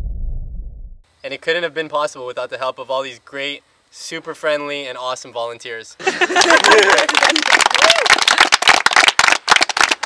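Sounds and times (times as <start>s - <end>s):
group of people clapping: 6.2s - 10.0s.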